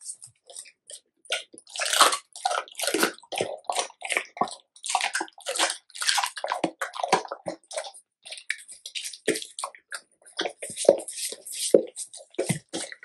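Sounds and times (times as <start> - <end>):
dog chewing and licking: 0.0 - 13.0.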